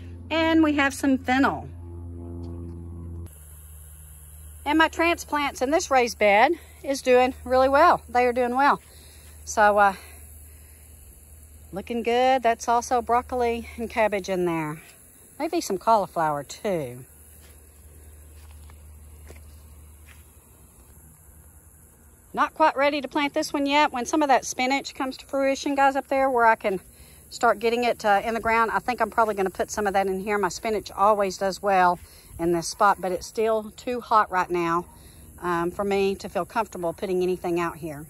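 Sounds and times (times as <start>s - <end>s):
faint steady hum: 0.0s - 38.0s
low mechanical drone: 0.0s - 38.0s
soft footsteps on ground cover: 17.3s - 21.3s.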